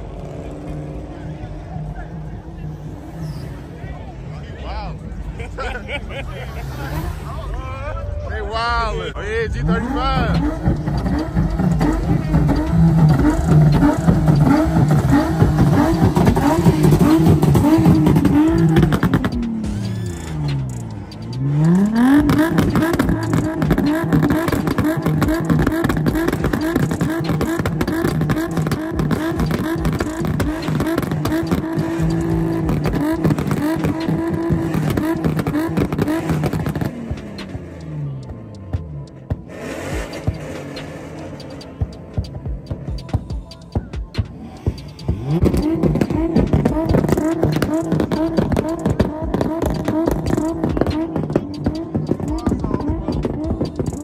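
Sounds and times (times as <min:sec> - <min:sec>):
car engine revving high: 0:00.0 - 0:08.2, 0:09.2 - 0:54.0.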